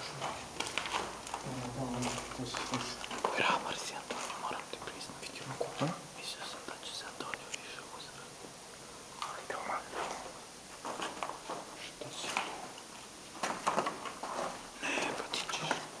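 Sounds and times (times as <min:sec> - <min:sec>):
footsteps on rubble: 0:00.0 - 0:04.6, 0:09.9 - 0:12.7, 0:13.3 - 0:15.9
people whispering: 0:01.4 - 0:08.4, 0:09.2 - 0:10.3, 0:11.8 - 0:12.6, 0:14.8 - 0:16.0.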